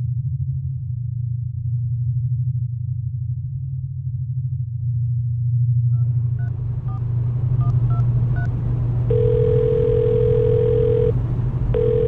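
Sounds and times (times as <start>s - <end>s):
car cabin rumble: 6.0s - 12.0s
phone keypad tones: 9.1s - 11.2s, 11.8s - 12.0s
phone ringing tone: 9.1s - 12.0s.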